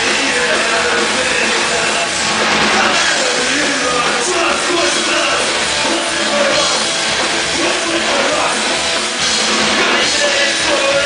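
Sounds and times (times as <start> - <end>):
distorted electric guitar: 0.0 - 11.0
drum kit: 0.0 - 11.0
punk rock band playing live: 0.0 - 11.0.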